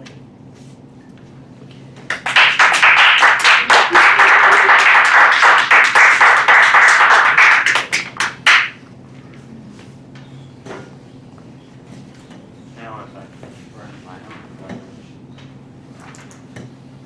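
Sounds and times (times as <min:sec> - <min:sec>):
small audience applauding: 0:02.1 - 0:08.8.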